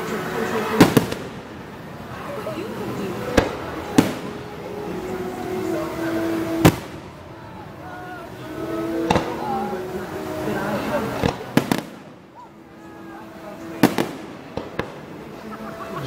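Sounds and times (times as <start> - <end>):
fireworks bursting: 0.0 - 12.4, 13.3 - 15.7.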